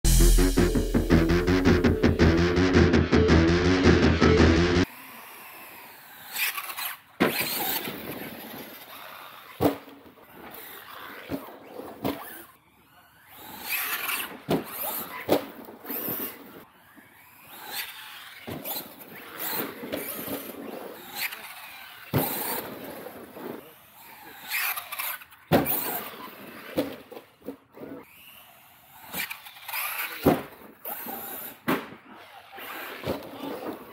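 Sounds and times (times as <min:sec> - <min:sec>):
toy truck hitting the ground: 0:22.1 - 0:23.3, 0:24.5 - 0:26.1, 0:29.1 - 0:32.0.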